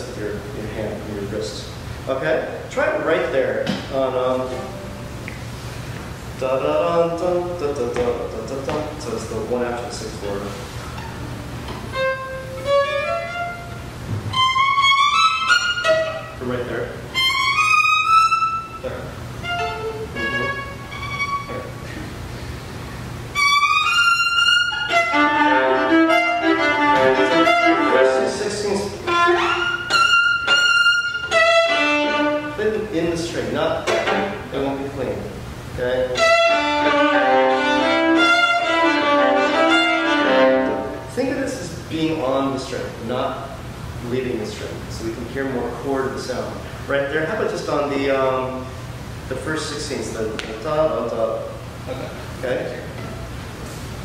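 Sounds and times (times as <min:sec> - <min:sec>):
bowed viola: 0:10.9 - 0:16.5, 0:17.1 - 0:21.9, 0:23.3 - 0:32.7, 0:33.7 - 0:34.7, 0:36.0 - 0:41.1.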